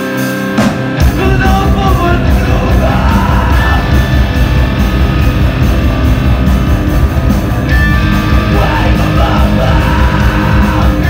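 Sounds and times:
bass guitar: 0.0s - 11.0s
distorted electric guitars: 0.0s - 11.0s
drums: 0.0s - 11.0s.

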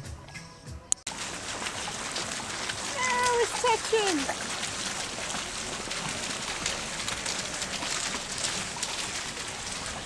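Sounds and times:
fountain jets splashing into pool: 1.1s - 10.0s.

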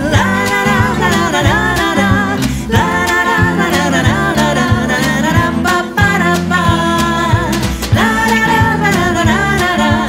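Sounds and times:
steady drum beat: 0.0s - 10.0s
women singing in harmony: 0.0s - 10.0s.

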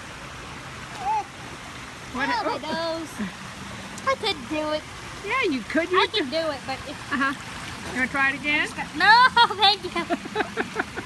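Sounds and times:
swimming pool water sloshing: 0.0s - 11.0s.

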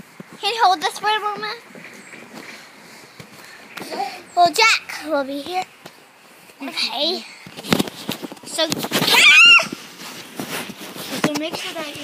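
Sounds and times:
child's voice: 3.9s - 5.7s, 6.6s - 7.4s, 11.1s - 12.0s.

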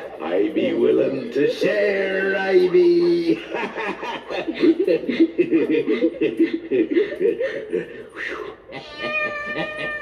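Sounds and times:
cat meowing: 8.8s - 10.0s.

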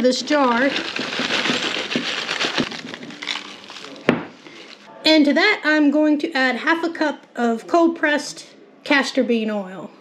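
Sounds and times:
paper bag crinkling: 0.0s - 4.9s.

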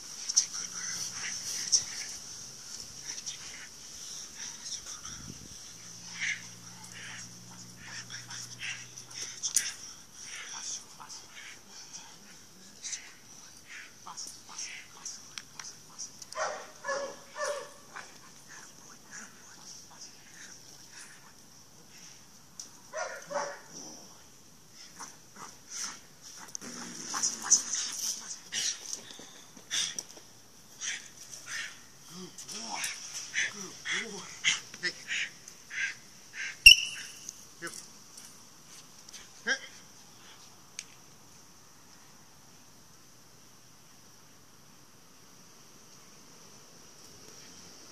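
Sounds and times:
steady high hiss: 0.0s - 47.9s.

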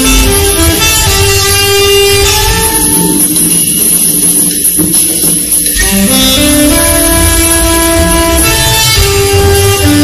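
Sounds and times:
saxophone long note: 0.0s - 3.0s, 6.1s - 10.0s
backing track: 0.0s - 10.0s.

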